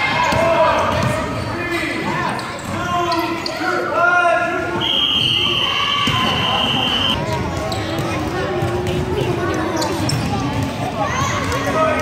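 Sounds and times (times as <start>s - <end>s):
basketballs bouncing: 0.2s - 1.3s, 6.0s - 11.8s.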